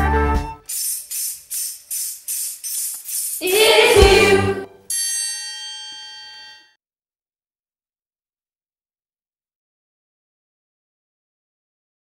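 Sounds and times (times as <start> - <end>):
instruments playing: 0.6 - 5.4
group singing a held note: 3.4 - 4.8.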